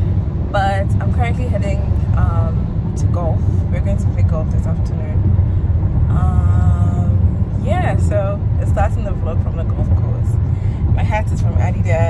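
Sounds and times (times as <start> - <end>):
car cabin road rumble: 0.0 - 12.0
woman's voice: 0.5 - 5.2, 6.1 - 12.0.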